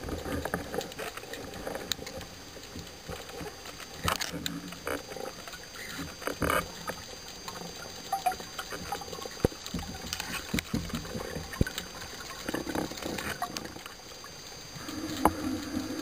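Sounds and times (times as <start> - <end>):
small clicks and pops: 0.0 - 16.0
underwater water wash: 0.0 - 16.0.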